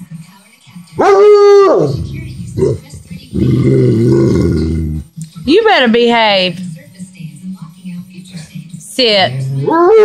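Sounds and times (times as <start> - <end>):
dog howling bark: 1.0 - 2.0.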